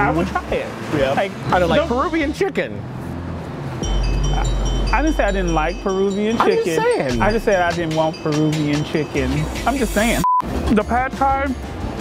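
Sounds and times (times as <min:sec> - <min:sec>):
deep sustained bass tone: 0:03.8 - 0:06.0
high repeated chiming notes: 0:03.8 - 0:10.2.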